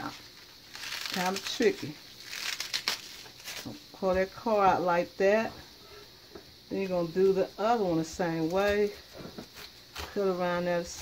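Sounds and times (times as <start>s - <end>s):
cabbage leaves crunching: 0.0s - 3.8s
cabbage snapping: 0.6s - 3.7s.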